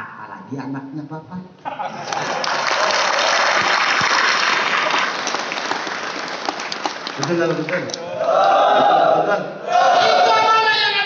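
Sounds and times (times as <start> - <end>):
audience applauding: 2.0 - 7.9.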